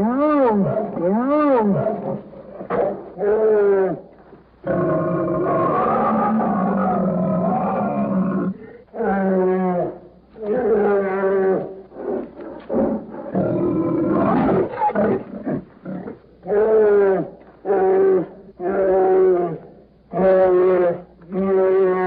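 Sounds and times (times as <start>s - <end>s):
bear roaring: 0.0s - 22.0s.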